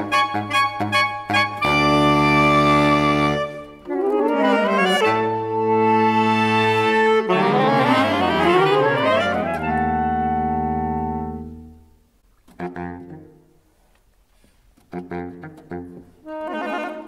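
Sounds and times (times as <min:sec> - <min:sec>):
saxophone quartet chords and glissandi: 0:00.0 - 0:12.0, 0:15.0 - 0:17.0.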